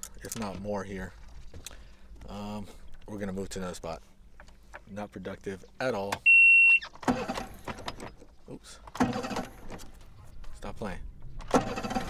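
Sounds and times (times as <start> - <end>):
electronic beep: 6.3 - 6.9.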